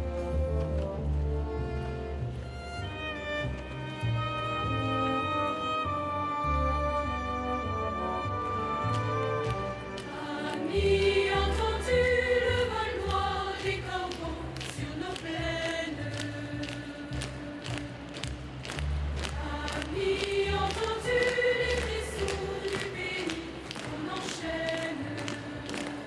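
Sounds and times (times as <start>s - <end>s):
choir singing long held notes: 7.8s - 18.2s, 19.3s - 26.0s.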